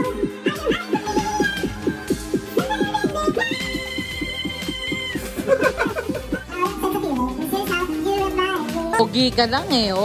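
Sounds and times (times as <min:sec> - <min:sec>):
woman singing into microphone: 0:00.0 - 0:05.5
karaoke backing track: 0:00.0 - 0:10.0.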